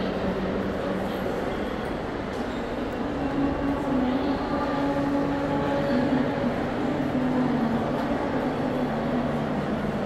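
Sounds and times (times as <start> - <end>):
distant crowd noise: 0.0 - 10.0.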